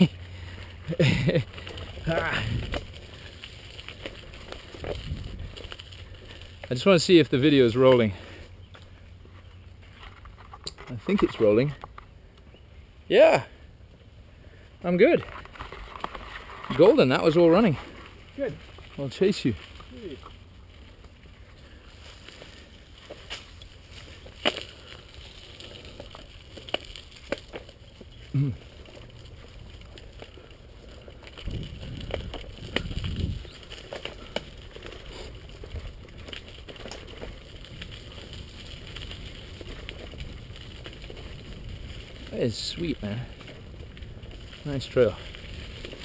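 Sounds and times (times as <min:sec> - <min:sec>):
tyres rumbling on dirt: 0:00.0 - 0:08.6, 0:14.8 - 0:46.0
bike clicks and rattles: 0:00.0 - 0:12.6, 0:15.1 - 0:46.0.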